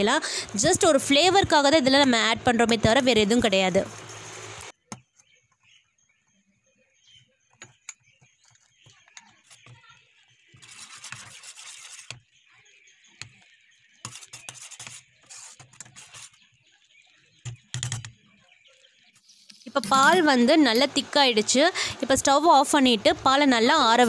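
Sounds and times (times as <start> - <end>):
metal spoon scraping steel pot: 10.6 - 12.2.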